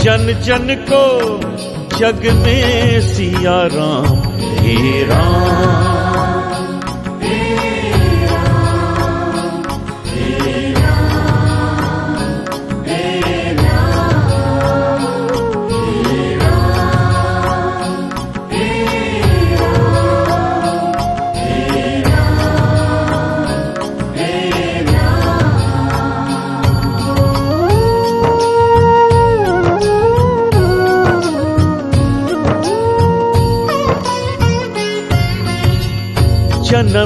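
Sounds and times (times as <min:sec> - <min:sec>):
voices chanting: 0:04.6 - 0:27.7.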